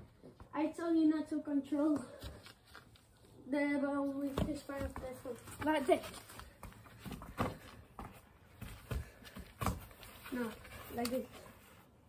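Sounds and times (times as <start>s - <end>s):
football kicked thuds: 6.6s - 9.9s.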